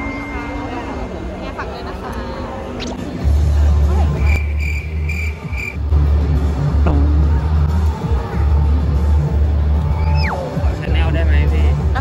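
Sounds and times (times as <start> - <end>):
loud music with heavy bass: 3.2 - 12.0.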